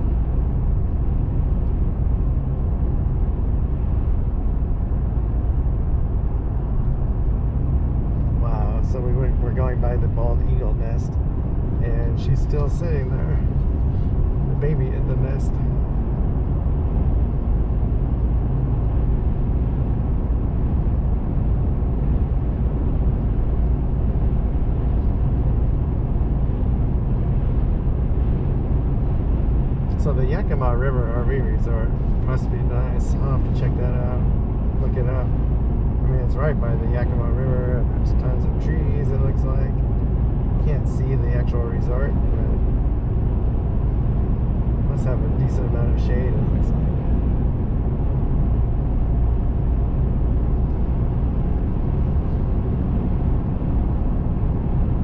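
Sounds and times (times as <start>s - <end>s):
vehicle road and engine rumble: 0.0s - 55.0s.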